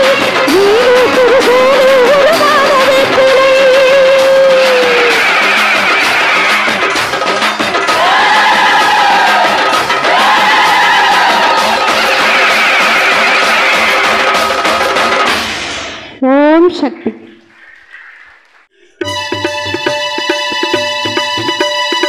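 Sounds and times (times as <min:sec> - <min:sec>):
woman singing devotional song: 0:00.5 - 0:05.0
electronic keyboard: 0:19.0 - 0:22.0
tabla: 0:19.0 - 0:22.0.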